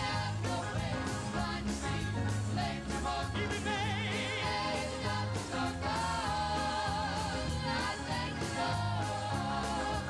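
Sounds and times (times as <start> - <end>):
gospel band playing: 0.0 - 10.0.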